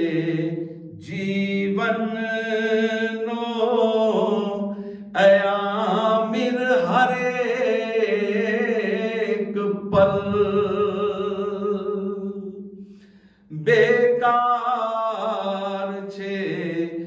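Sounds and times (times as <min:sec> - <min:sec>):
man singing devotional song: 0:00.0 - 0:12.7, 0:13.5 - 0:17.0.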